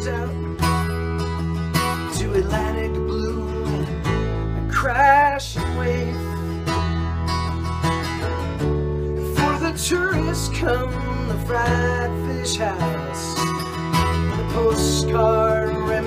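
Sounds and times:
acoustic guitar strumming: 0.0 - 16.0
bass guitar low notes: 0.0 - 16.0.

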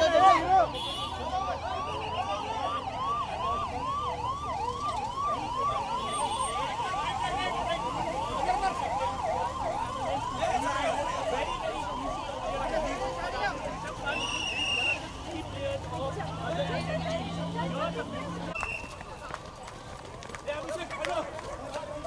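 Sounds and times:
emergency siren fast yelp: 0.0 - 15.3.

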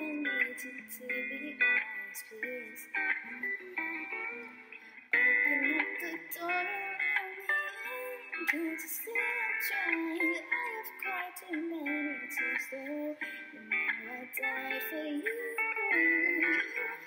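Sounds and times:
musical accompaniment: 0.0 - 17.0
woman singing into microphone: 0.0 - 17.0.

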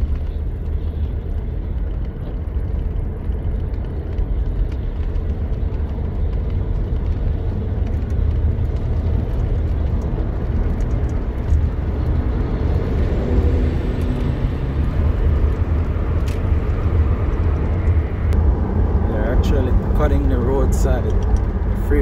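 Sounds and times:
car interior road and engine rumble: 0.0 - 22.0.

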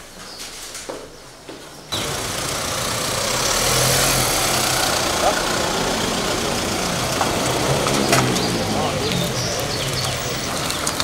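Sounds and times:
outdoor noise: 0.0 - 11.0
truck engine driving past: 1.9 - 11.0
voices: 1.9 - 11.0.

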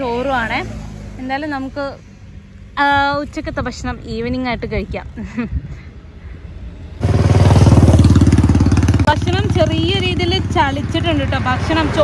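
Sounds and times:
vehicle engine running: 7.0 - 12.0.

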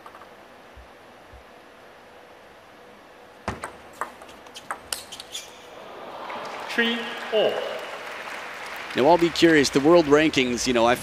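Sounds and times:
crowd applauding: 5.8 - 11.0.

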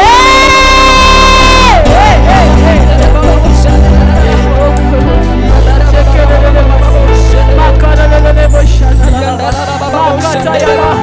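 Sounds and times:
loud worship music: 0.0 - 11.0.

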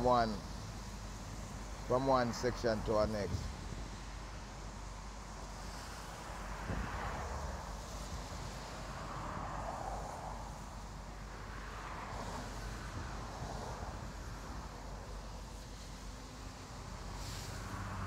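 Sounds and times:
vehicles passing: 0.0 - 18.0
wind rumble on microphone: 6.6 - 15.4.

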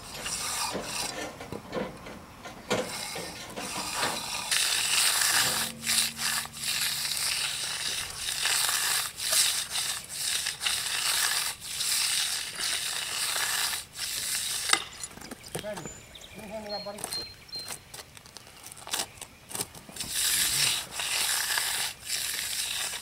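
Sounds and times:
trowel scraping wet concrete: 0.0 - 1.4, 2.8 - 15.2, 18.9 - 23.0.

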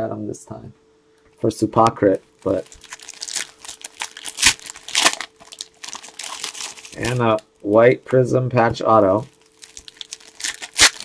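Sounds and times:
foil wrappers crinkling: 2.2 - 7.8, 9.2 - 11.0.

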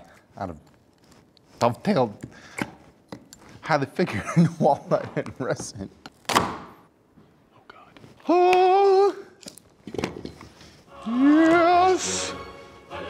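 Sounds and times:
man making wordless vocal sounds: 10.9 - 12.4.

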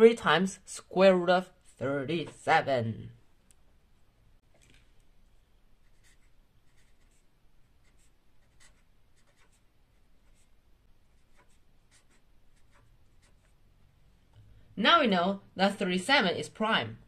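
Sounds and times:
marker pen writing on paper: 5.8 - 13.6.

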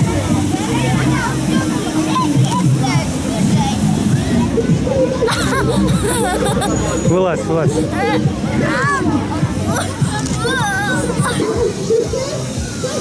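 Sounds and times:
background music with bass line: 0.0 - 13.0
children calling and chattering: 0.0 - 13.0.

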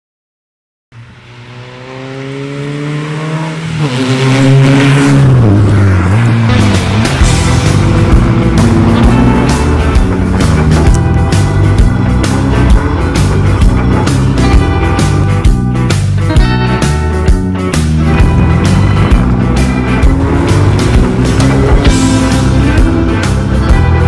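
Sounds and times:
rally car engine revving: 1.0 - 24.0
rock music with drum beat: 6.4 - 24.0.

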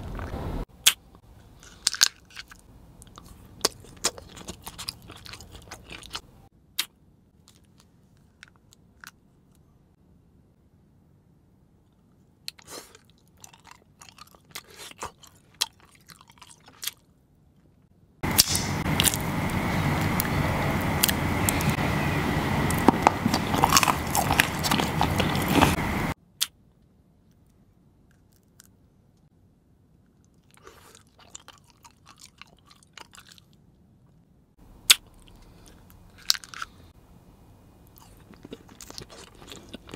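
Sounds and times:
chewing and clicking noises: 1.6 - 6.2, 12.5 - 17.1, 22.7 - 26.6, 30.2 - 34.2, 34.9 - 36.9, 37.8 - 39.9
candy bitten: 22.7 - 25.8, 37.9 - 39.9.

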